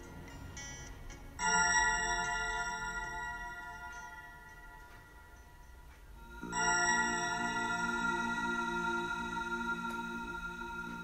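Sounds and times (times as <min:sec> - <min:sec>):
bell-like chime ringing: 0:00.0 - 0:11.0.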